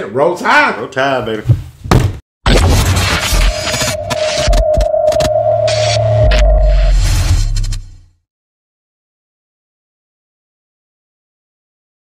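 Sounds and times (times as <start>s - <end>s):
static-like noise bursts: 2.5s - 8.0s
swoosh: 2.7s - 8.1s
steady high tone: 3.1s - 7.9s
deep bass rumble: 3.2s - 8.0s.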